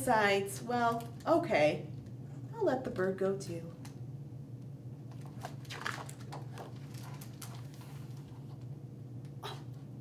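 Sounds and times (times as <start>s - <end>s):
low steady hum: 0.0s - 10.0s
book pages turning: 5.0s - 8.7s.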